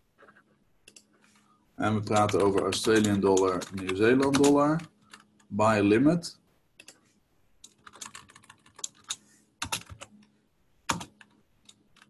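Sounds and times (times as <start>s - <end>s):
typing on computer keyboard: 0.2s - 5.5s, 6.8s - 7.0s, 7.6s - 10.3s, 10.9s - 12.0s.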